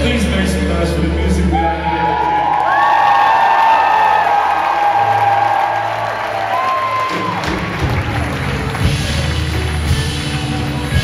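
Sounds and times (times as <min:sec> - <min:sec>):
audience cheering and applauding: 0:01.3 - 0:11.0.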